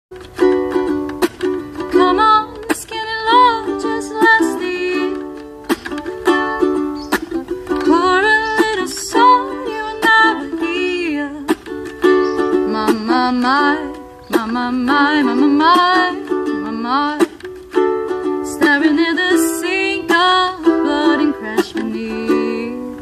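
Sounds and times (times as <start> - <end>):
ukulele strumming chords: 0.1 - 23.0.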